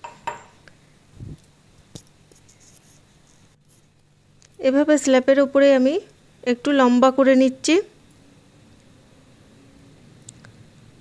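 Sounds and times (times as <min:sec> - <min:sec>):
woman speaking: 0:04.6 - 0:07.9.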